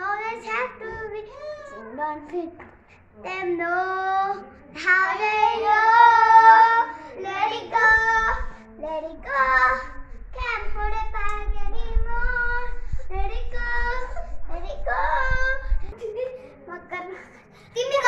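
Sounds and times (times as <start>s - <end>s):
children singing a pop song: 0.0s - 18.0s
low rumble: 8.0s - 16.0s.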